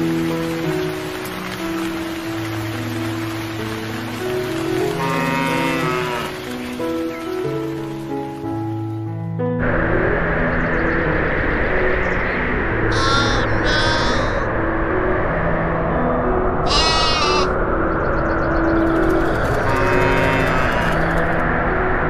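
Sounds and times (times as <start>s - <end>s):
background music: 0.0s - 22.0s
steady hiss: 0.0s - 22.0s
sheep bleating: 4.9s - 6.4s, 12.9s - 14.4s, 16.7s - 17.6s, 19.7s - 21.1s.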